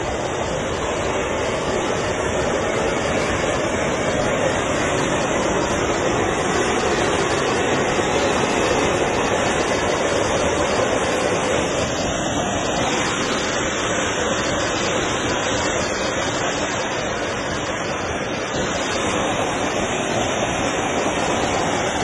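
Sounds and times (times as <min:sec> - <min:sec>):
gas hissing under high pressure: 0:00.0 - 0:22.0.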